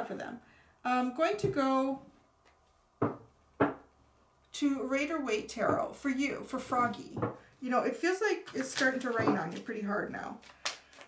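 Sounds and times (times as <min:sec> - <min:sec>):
knocks on a tabletop: 0:03.0 - 0:03.8, 0:06.8 - 0:07.4.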